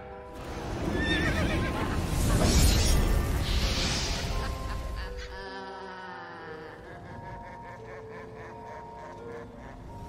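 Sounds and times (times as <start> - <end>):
horror music: 0.0 - 10.0
hissing swell: 0.4 - 5.4.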